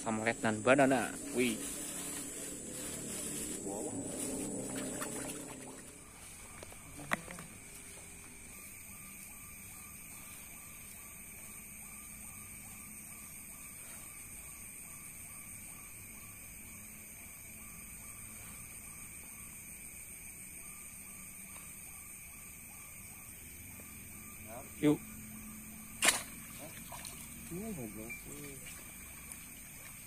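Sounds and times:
night insects trilling: 0.0s - 30.0s.

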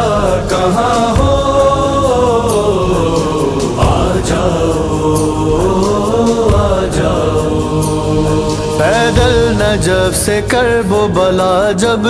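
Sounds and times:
low sustained backing drone: 0.0s - 12.0s
voices chanting devotional music: 0.0s - 12.0s.

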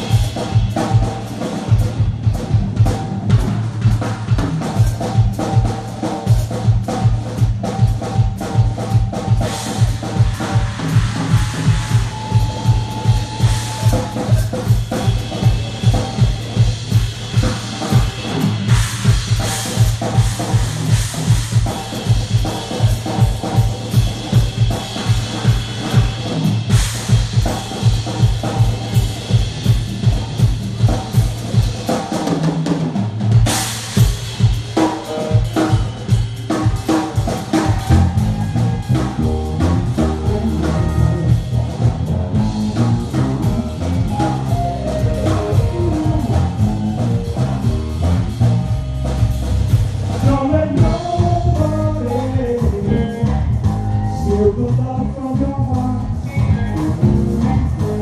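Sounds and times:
rock drum beat: 0.0s - 58.0s
electric guitars: 34.8s - 58.0s
sustained bass line: 37.6s - 58.0s.

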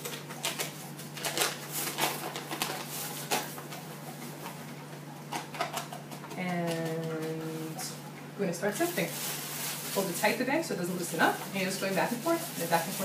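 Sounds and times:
paper bag crinkling and rustling: 0.0s - 4.6s, 8.6s - 13.0s
steady low hum: 0.0s - 13.0s.

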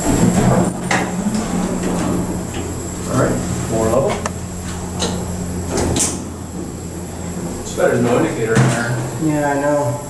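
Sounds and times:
elevator doors clacking: 0.0s - 9.2s
elevator doors sliding shut: 0.0s - 9.2s
low hum: 0.0s - 10.0s.

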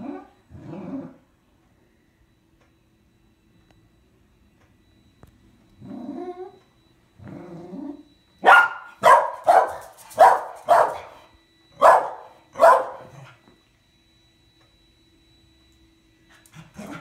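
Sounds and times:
dog barking: 8.4s - 11.2s, 11.8s - 13.2s.

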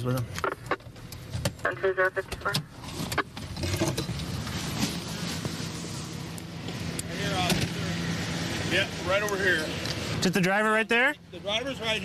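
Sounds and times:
car engine humming: 0.0s - 12.0s
road noise: 0.0s - 12.0s.

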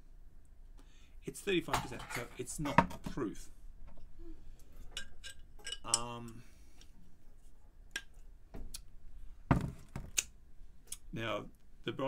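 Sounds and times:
dull thump: 9.5s - 10.1s.

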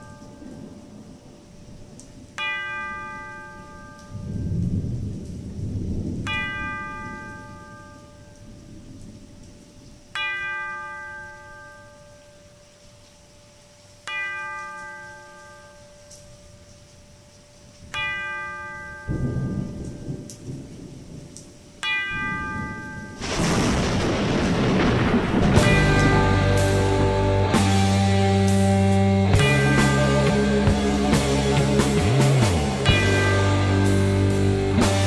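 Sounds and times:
steady rain: 0.0s - 35.0s
bell tolling slowly: 2.4s - 4.7s, 6.3s - 8.4s, 21.8s - 23.4s, 24.8s - 35.0s
low thunder rumble: 4.1s - 9.8s, 19.1s - 21.4s, 22.1s - 35.0s.

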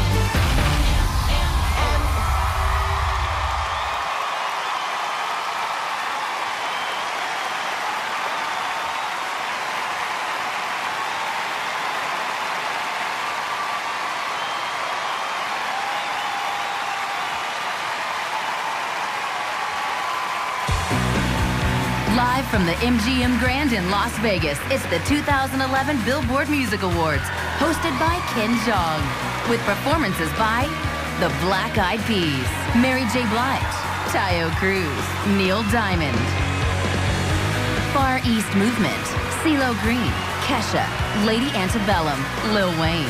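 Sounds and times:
song music: 0.0s - 2.7s, 20.7s - 43.0s
bass-heavy music cue: 0.0s - 3.0s, 20.7s - 23.6s, 36.1s - 38.0s
arena crowd cheering and applauding: 0.0s - 43.0s.

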